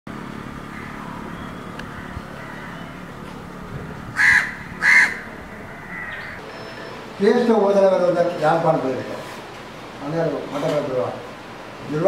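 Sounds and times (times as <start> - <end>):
steady background hum: 0.1 - 12.0
crow cawing: 0.6 - 3.1, 4.1 - 6.4.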